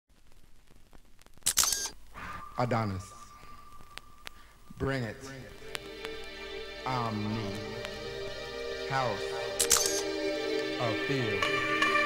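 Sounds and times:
bright hissing burst: 0:01.4 - 0:10.4.

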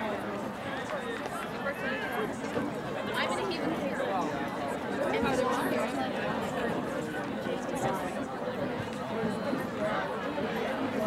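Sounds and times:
murmur of overlapping voices: 0:00.0 - 0:11.0.

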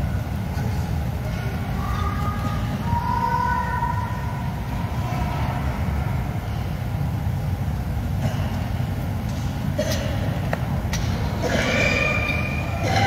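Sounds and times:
low rumbling background noise: 0:00.0 - 0:13.0.

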